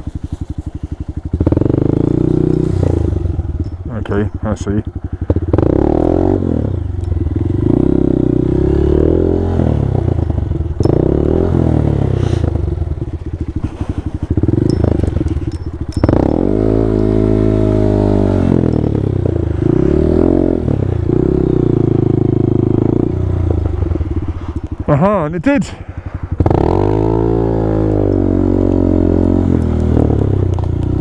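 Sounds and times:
motorcycle engine revving: 0.0 - 31.0.

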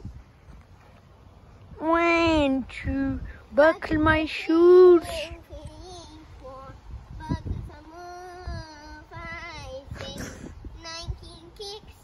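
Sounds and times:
child singing long notes: 5.1 - 12.0.

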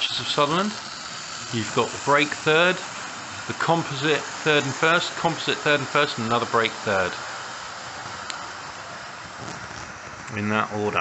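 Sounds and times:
model train whirring on rails: 0.0 - 11.0.

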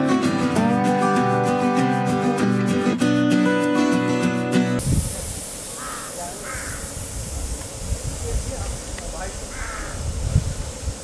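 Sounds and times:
guitar music: 0.0 - 4.8
bird short harsh calls: 5.8 - 7.0, 9.5 - 10.0.

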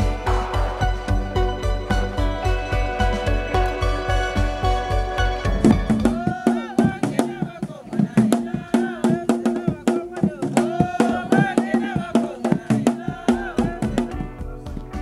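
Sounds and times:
quick percussion beat: 0.0 - 15.0
voices singing together: 0.0 - 15.0.

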